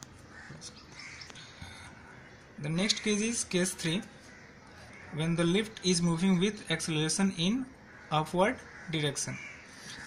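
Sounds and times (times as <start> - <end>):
faint bird calls: 0.1 - 6.6, 7.4 - 10.0.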